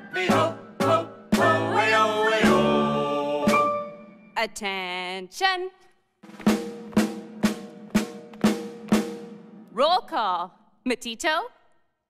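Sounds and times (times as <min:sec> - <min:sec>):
drum beating a march: 0:00.2 - 0:04.2, 0:06.2 - 0:09.6.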